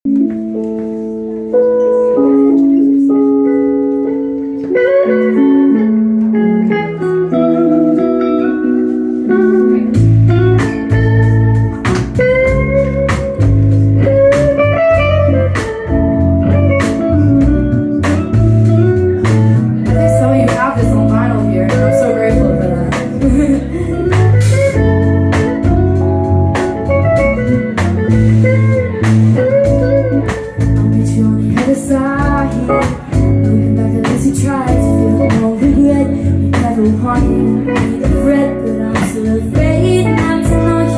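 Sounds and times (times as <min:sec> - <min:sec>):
bass: 0:00.0 - 0:40.9
keyboard chords: 0:00.0 - 0:40.9
electric guitar plucking notes: 0:00.1 - 0:40.9.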